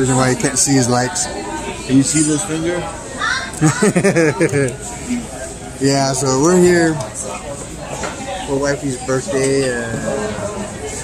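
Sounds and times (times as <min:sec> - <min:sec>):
person laughing: 0:03.6 - 0:04.7.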